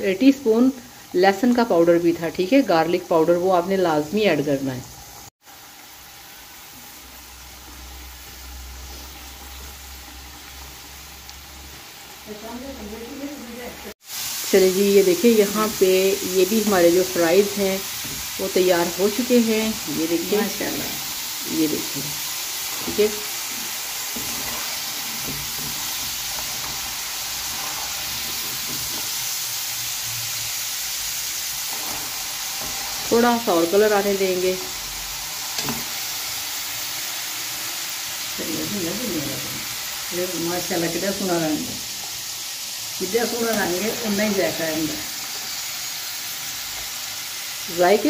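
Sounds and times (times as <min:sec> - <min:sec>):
fries sizzling in hot oil: 0:00.0 - 0:48.0
metal spoon turning fries: 0:06.6 - 0:48.0.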